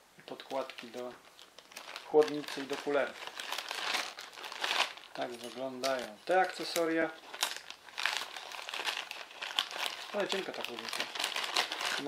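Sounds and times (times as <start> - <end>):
plastic bag crinkling: 0.4 - 12.0.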